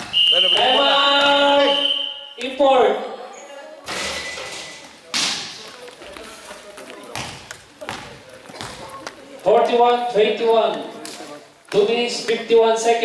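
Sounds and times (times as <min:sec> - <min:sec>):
basketball bouncing in gym hall: 0:07.1 - 0:09.0.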